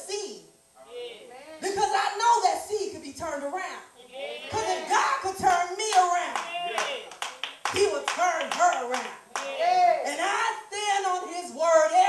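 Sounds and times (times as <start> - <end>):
voices calling out: 4.0 - 5.3, 6.2 - 7.2
congregation clapping: 5.8 - 9.6.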